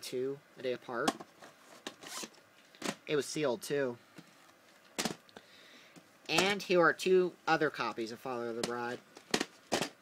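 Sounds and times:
cardboard sleeve scraping rustle: 0:01.5 - 0:02.4.

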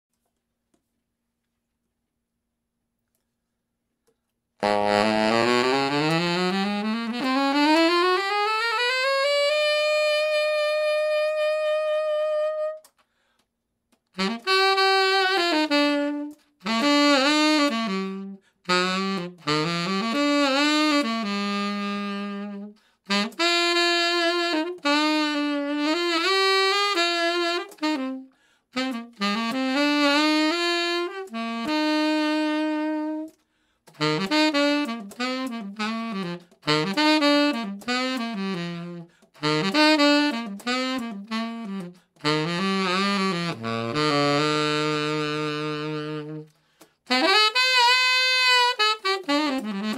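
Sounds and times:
tenor saxophone solo: 0:04.1 - 0:13.4, 0:14.0 - 0:49.9.

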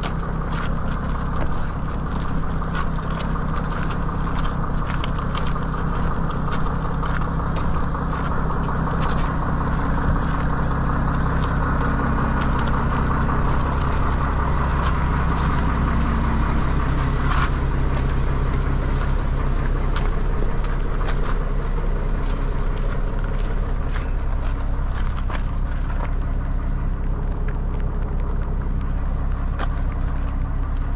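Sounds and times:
truck diesel engine passing: 0:00.0 - 0:30.9
tyres hissing on wet road: 0:00.0 - 0:30.9.

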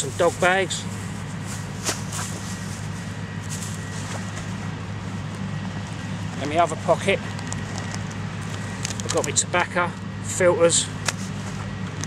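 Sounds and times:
plastic bag rustling: 0:00.0 - 0:06.4
low mechanical hum: 0:00.0 - 0:12.0.

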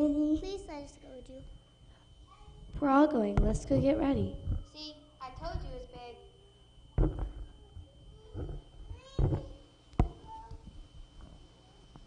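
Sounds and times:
sharp knocks: 0:07.0 - 0:07.4, 0:08.4 - 0:10.3.

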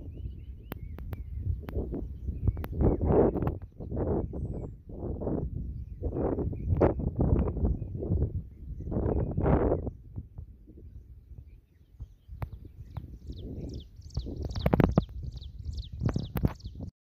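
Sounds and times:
wind rumbling on microphone: 0:00.0 - 0:16.9.

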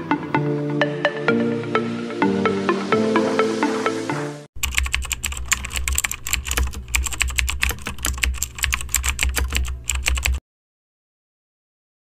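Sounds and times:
music: 0:00.0 - 0:04.5
rapid keyboard typing: 0:04.6 - 0:10.4.

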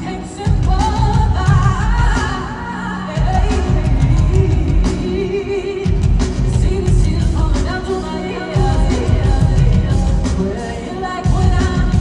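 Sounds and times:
band with heavy bass: 0:00.0 - 0:12.0
woman singing a slow ballad: 0:00.0 - 0:12.0.

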